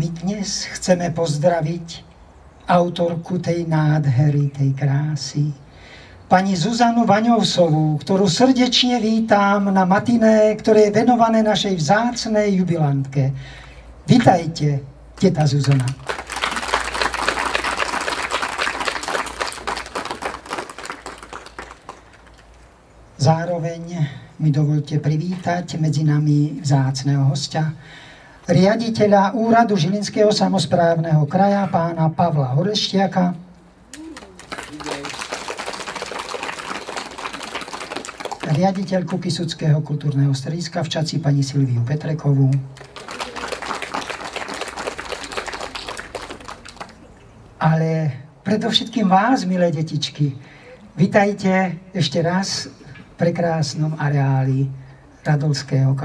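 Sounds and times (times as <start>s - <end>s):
audience applause: 15.7s - 22.4s, 34.0s - 38.9s, 42.8s - 47.1s.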